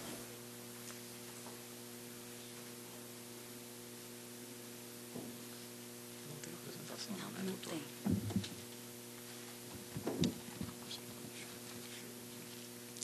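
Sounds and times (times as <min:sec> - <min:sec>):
electrical mains hum: 0:00.0 - 0:13.0
faint sound system hiss: 0:00.0 - 0:13.0
soft bump: 0:08.0 - 0:08.5.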